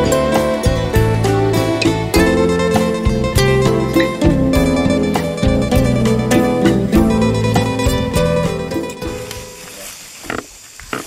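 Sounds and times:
background music: 0.0s - 9.7s.

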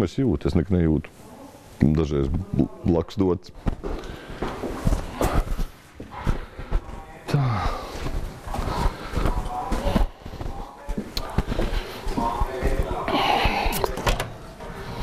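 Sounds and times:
footsteps walking: 0.5s - 15.0s
indistinct talking: 2.4s - 15.0s.

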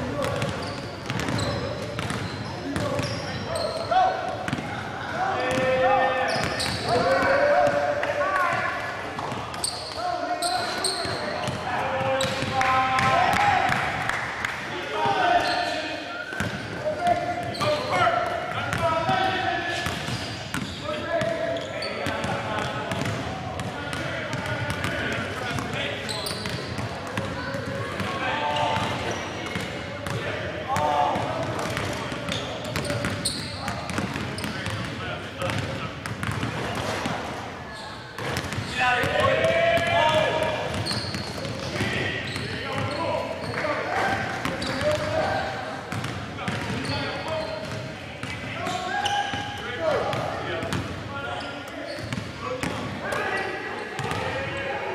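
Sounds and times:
basketball bouncing on court floor: 0.2s - 3.2s, 4.3s - 4.7s, 19.8s - 21.3s, 22.0s - 25.7s, 28.8s - 30.2s, 31.2s - 37.2s, 38.2s - 45.2s, 45.9s - 46.9s, 54.0s - 54.3s.

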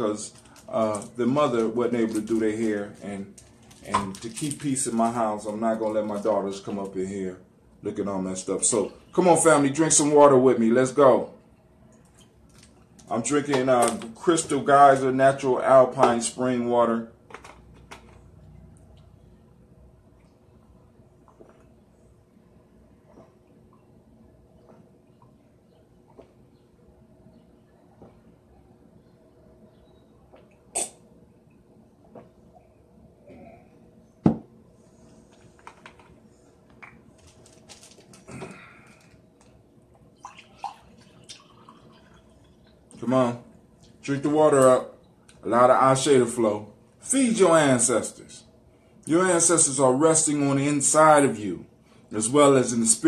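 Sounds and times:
faint steady hum: 0.0s - 53.0s.

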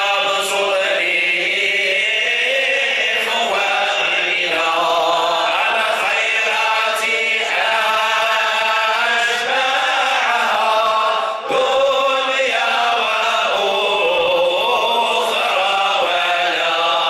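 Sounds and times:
men chanting devotional song: 0.0s - 17.0s.

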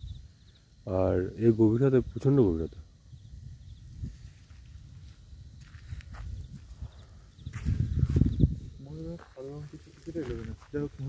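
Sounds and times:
footsteps crunching on dry leaves: 3.9s - 6.9s, 7.5s - 11.0s.

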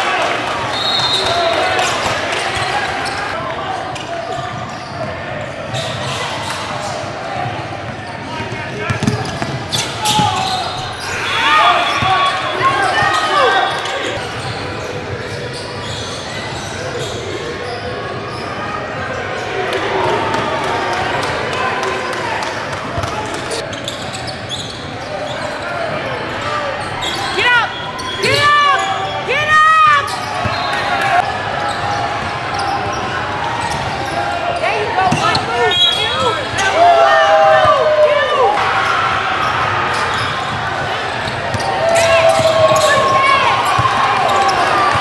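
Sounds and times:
spectators chattering: 0.0s - 45.0s
sneakers squeaking: 0.6s - 19.7s, 23.0s - 45.0s.

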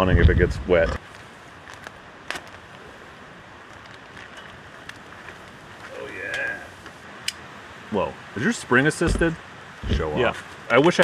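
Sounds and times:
outdoor background noise: 0.0s - 11.0s
light knock: 9.1s - 10.1s.

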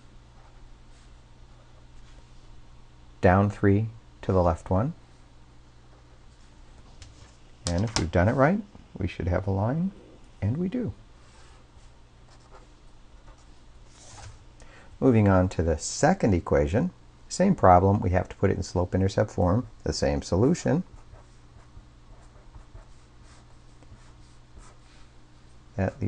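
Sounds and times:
low steady hum: 0.0s - 26.0s
pen scratching on paper: 20.9s - 24.9s.

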